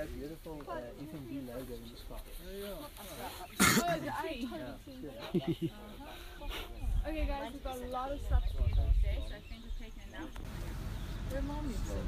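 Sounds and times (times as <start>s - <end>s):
people talking: 0.0s - 10.4s, 11.2s - 12.0s
loud cough-like burst: 3.6s - 3.9s.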